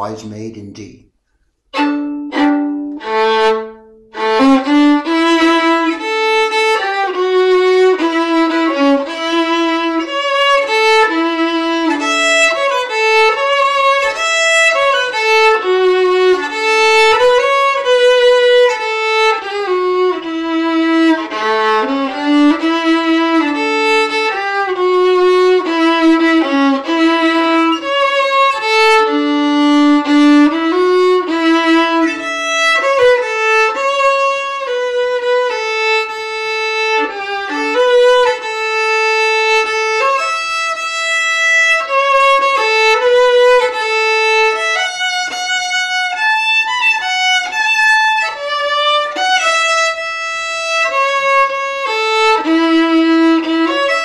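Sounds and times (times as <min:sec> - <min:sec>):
solo fiddle waltz: 0:01.6 - 0:54.0.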